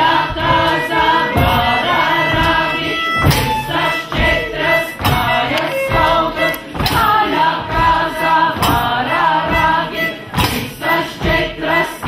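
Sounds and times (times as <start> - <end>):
group of people singing: 0.0 - 12.0
violin: 0.0 - 12.0.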